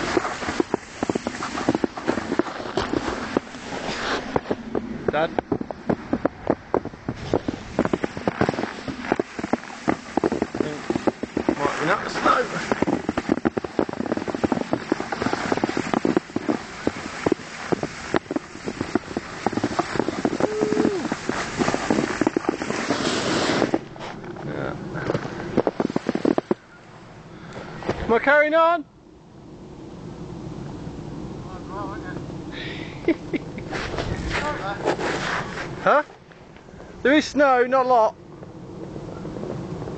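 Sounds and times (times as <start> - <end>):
handheld camera knocking and rubbing: 0.0 - 24.4, 25.0 - 26.6
footsteps crunching on snow: 0.0 - 26.6, 33.7 - 36.4.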